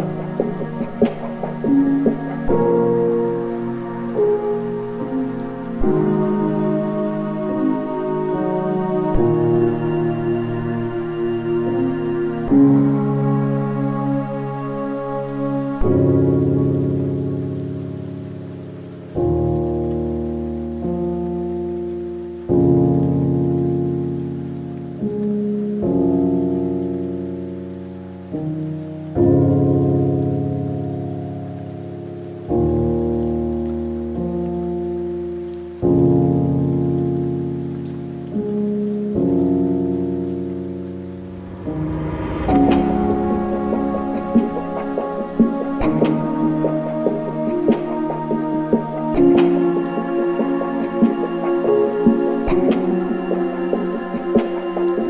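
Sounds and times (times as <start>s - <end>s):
falling rain: 0.0s - 55.0s
slow piano chords: 0.0s - 55.0s.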